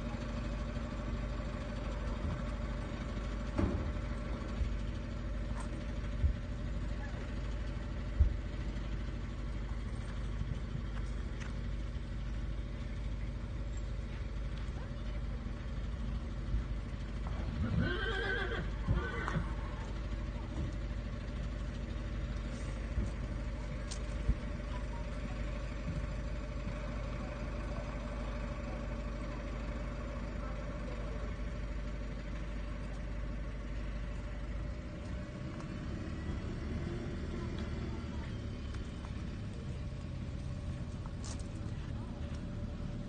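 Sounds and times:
steady low rumble: 0.0s - 43.0s
horse whinnying: 17.6s - 19.6s.

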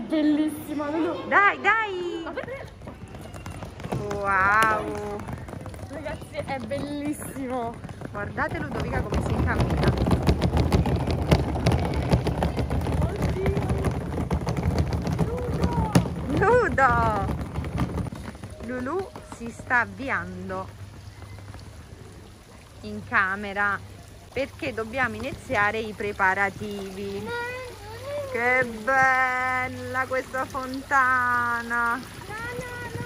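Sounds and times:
suitcase wheels rolling on bricks: 0.0s - 33.0s.

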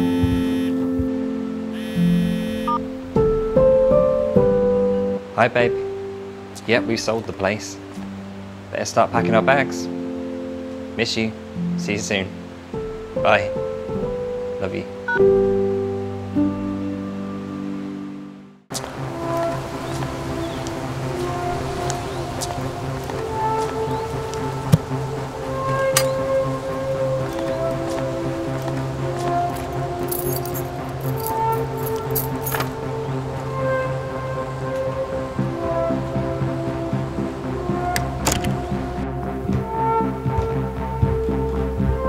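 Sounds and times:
slow mysterious film music: 0.0s - 42.0s
steady low drone: 11.6s - 42.0s
light metallic jingling: 29.5s - 32.8s.

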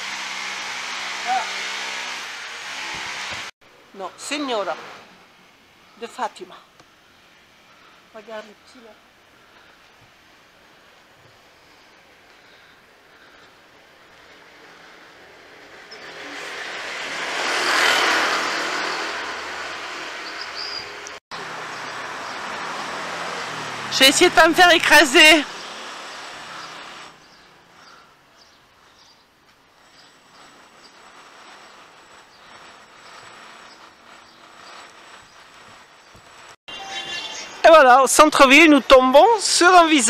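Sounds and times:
car passing close by: 16.1s - 20.2s, 21.4s - 24.4s.

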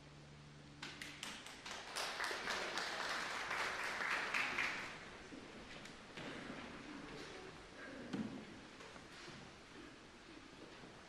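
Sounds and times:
congregation applauding: 1.0s - 5.2s.

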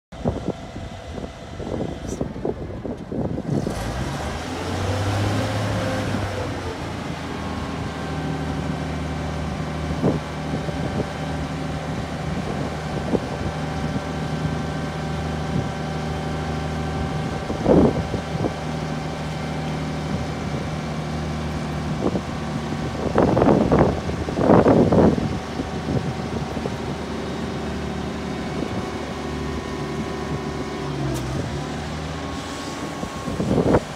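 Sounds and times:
forklift engine running: 0.1s - 33.9s
hydraulics raising attachment: 30.8s - 33.9s.

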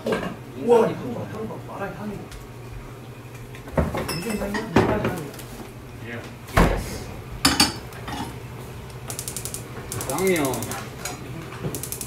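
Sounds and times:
pans clanking: 7.4s - 8.4s
rapid ratchet-like clicking: 9.1s - 10.8s, 11.7s - 12.0s.

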